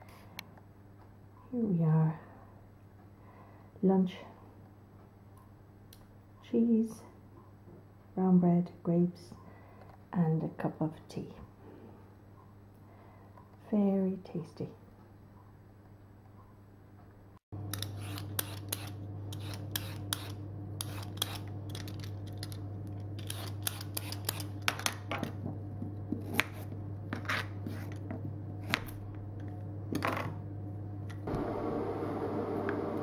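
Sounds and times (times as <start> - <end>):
steady low hum: 0.0 - 33.0
vegetable peeler scraping carrot: 17.7 - 22.0, 23.2 - 24.6
low hum: 18.8 - 33.0.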